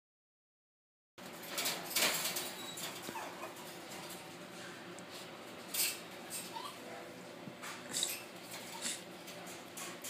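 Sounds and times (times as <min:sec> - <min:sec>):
puppy whimpering: 0:02.6 - 0:03.8, 0:06.4 - 0:07.0, 0:08.0 - 0:09.1.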